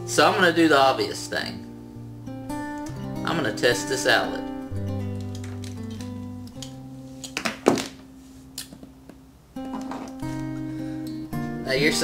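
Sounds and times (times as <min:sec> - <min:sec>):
acoustic guitar music: 0:00.0 - 0:12.0.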